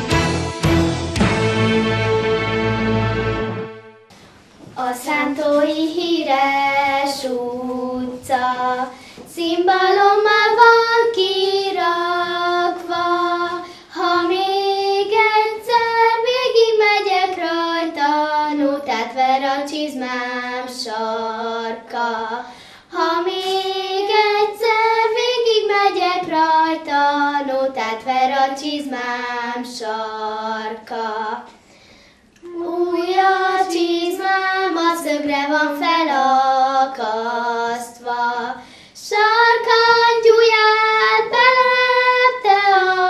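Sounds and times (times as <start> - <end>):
girls singing in unison: 4.6 - 31.7, 32.4 - 43.0.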